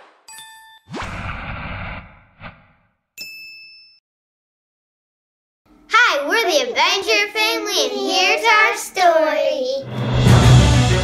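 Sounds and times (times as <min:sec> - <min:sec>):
bright metallic ding: 0:03.2 - 0:04.0.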